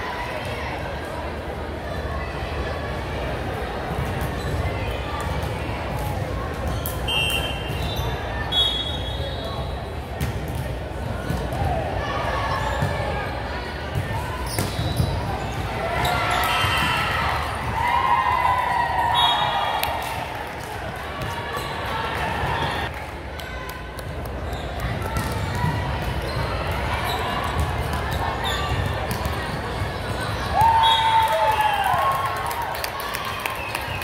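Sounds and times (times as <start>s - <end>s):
voices calling out and chattering: 0.0s - 34.0s.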